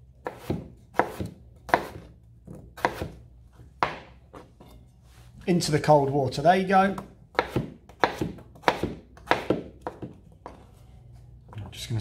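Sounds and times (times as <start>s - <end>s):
knife chopping on cutting board: 0.2s - 3.2s, 3.8s - 4.5s, 6.9s - 10.6s.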